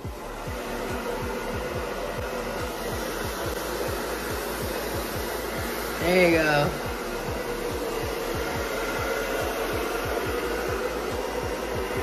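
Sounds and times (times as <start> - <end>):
hair dryer blowing: 0.0 - 12.0
low pulsing: 0.0 - 12.0.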